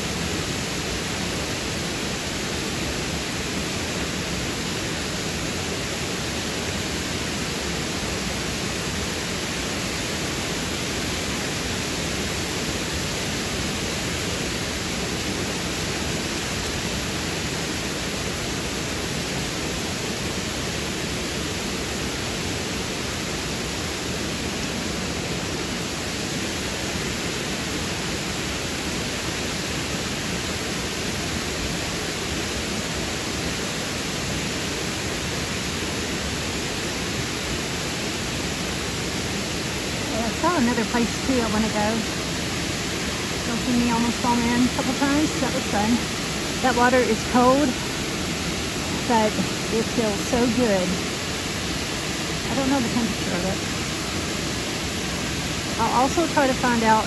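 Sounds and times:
waterfall rushing: 0.0 - 57.0.

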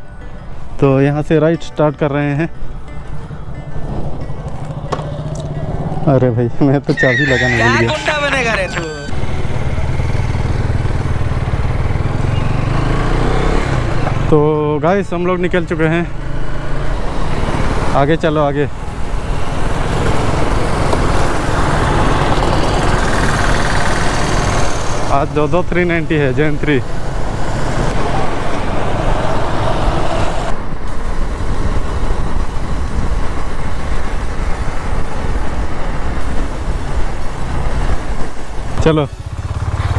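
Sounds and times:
background music: 0.0 - 10.0
motorcycle engine: 2.7 - 6.3, 7.0 - 30.5, 31.5 - 39.9
wind rushing over microphone: 26.8 - 39.5
motorcycle engine idling: 39.1 - 39.9.

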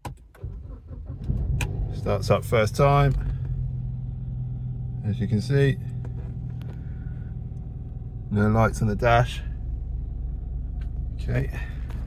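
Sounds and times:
car engine idling: 0.4 - 12.0.

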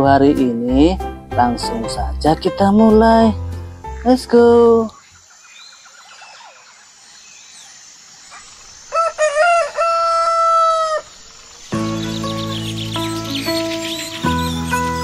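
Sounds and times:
background music: 0.0 - 4.9, 11.7 - 15.0
faint bird chirping: 3.6 - 9.1, 10.0 - 15.0
rooster crowing: 8.9 - 11.2.

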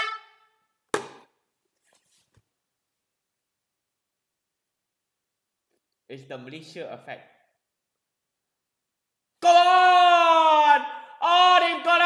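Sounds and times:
toy horn note: 0.0 - 0.5
sharp knock: 0.9 - 1.3.

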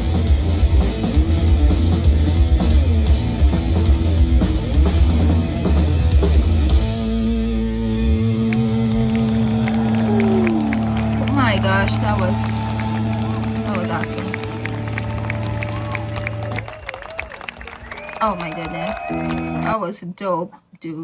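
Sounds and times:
distorted guitar and bass chord: 0.0 - 16.5
crowd shouting and cheering: 7.9 - 19.9
crowd clapping: 8.4 - 19.8.

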